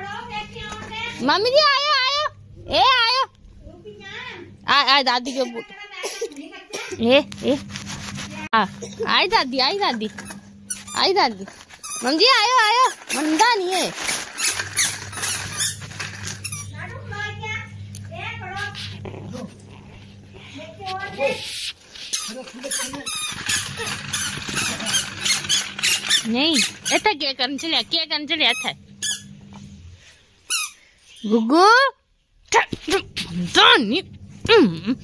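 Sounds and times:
steady low hum: 0.0s - 5.6s, 6.7s - 12.7s, 14.2s - 22.1s, 23.1s - 30.4s, 32.3s - 35.0s
baby walker wheels clattering: 9.8s - 16.8s, 22.2s - 28.7s.

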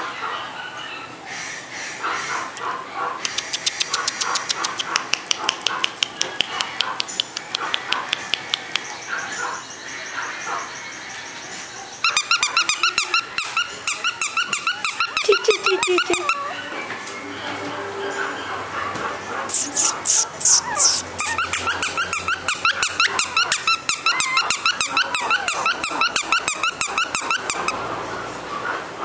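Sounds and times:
puppy yipping: 12.0s - 16.7s, 18.2s - 27.8s.

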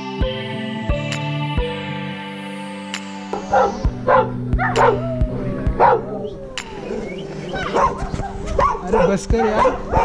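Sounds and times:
dog barking: 3.4s - 5.1s, 5.8s - 6.2s, 7.5s - 10.0s.

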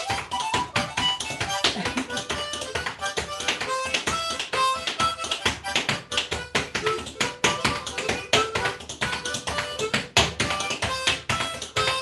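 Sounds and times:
feet tapping on floor: 0.0s - 12.0s
harmonica playing a tune: 0.0s - 12.0s.

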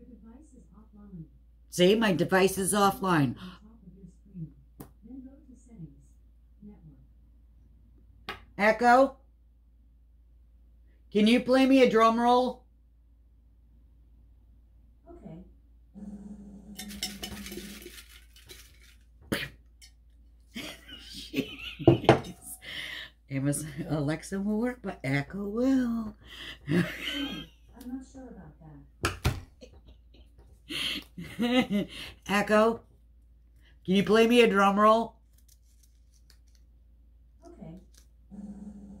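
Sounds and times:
paper slips rustling: 17.0s - 19.1s.

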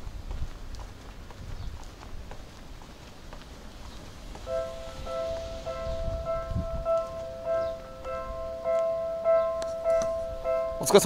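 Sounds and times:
level crossing warning bell: 4.4s - 11.0s.

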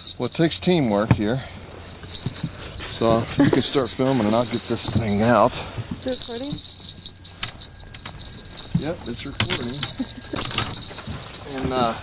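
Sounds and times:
night insects chirping: 0.0s - 11.8s.

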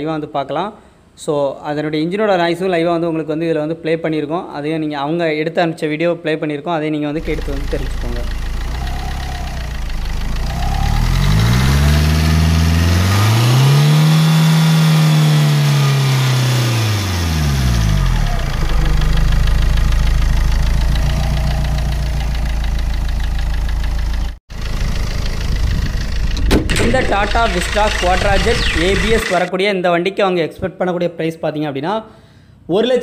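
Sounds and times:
diesel engine idling and revving: 7.2s - 29.5s.

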